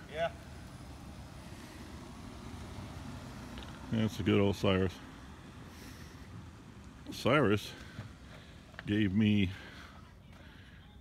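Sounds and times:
vehicle engine and tyre rumble: 0:00.0 - 0:11.0.

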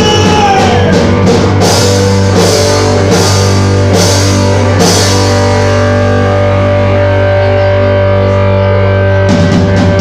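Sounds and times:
distorted electric guitars: 0:00.0 - 0:10.0.

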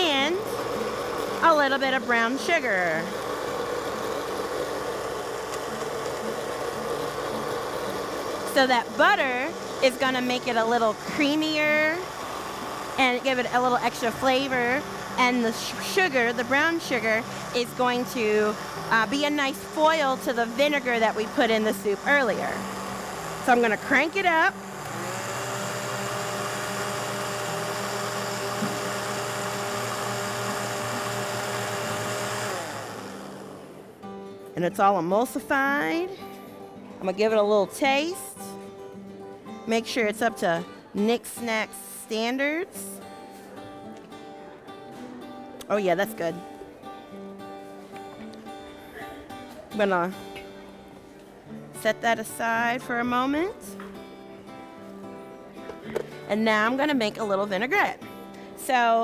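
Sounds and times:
blender running: 0:00.0 - 0:33.8.

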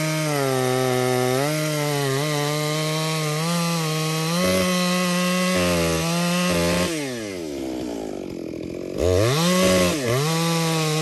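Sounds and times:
chainsaw cutting a tree trunk: 0:00.0 - 0:11.0.

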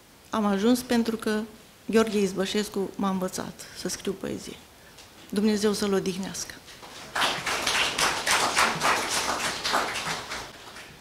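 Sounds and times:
small audience clapping: 0:06.8 - 0:11.0.

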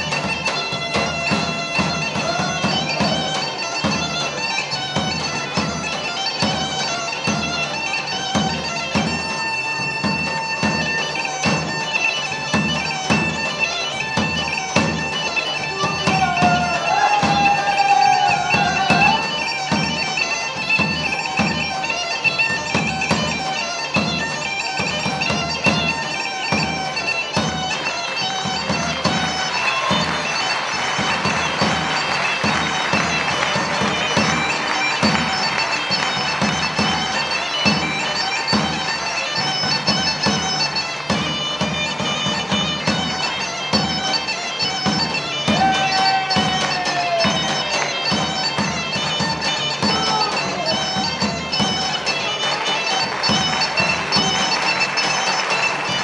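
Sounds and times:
bagpipe melody over drone: 0:00.0 - 0:56.0
drum beat: 0:00.1 - 0:04.1, 0:15.7 - 0:19.9, 0:29.0 - 0:38.8, 0:44.8 - 0:47.9, 0:48.5 - 0:51.8.

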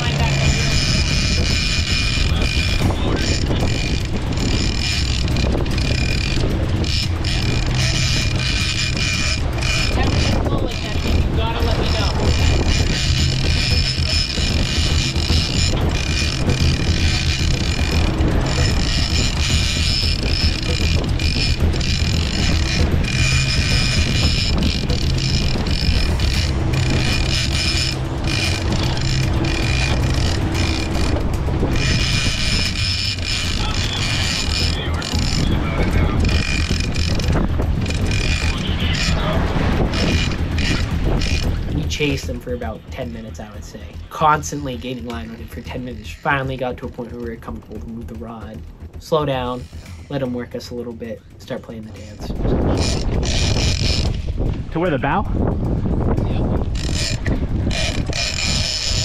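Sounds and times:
boat engine running: 0:00.0 - 0:59.0
fishing reel cranking: 0:00.0 - 0:59.0
water rushing along hull: 0:00.0 - 0:59.0.

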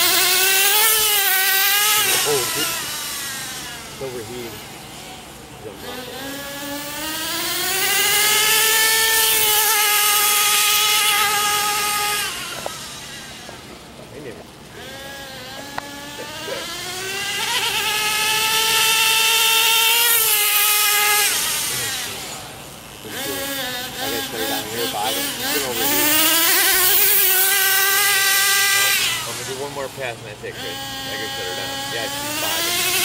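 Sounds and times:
small two-stroke engine revving: 0:00.0 - 0:33.0.

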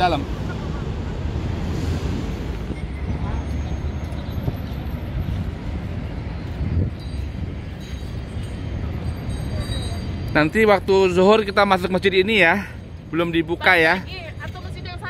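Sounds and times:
distant traffic: 0:00.0 - 0:15.0
wind buffeting microphone: 0:00.3 - 0:10.3.

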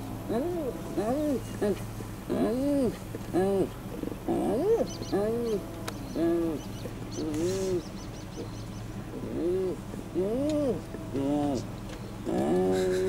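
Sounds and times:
hyena giggling calls: 0:00.4 - 0:08.5, 0:09.2 - 0:13.0.

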